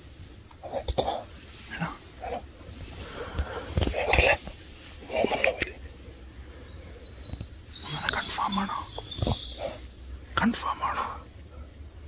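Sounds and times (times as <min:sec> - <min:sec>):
hushed human voice: 0:03.9 - 0:05.8.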